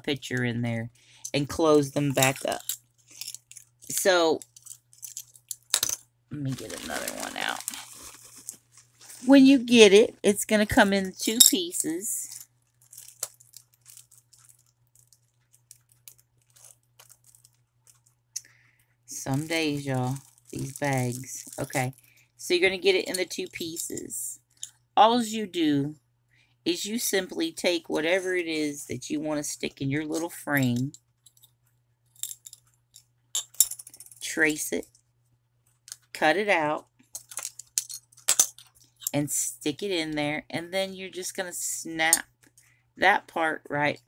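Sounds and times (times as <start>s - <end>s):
plastic bag crinkling: 2.8s - 9.5s, 12.3s - 18.3s, 19.2s - 22.0s.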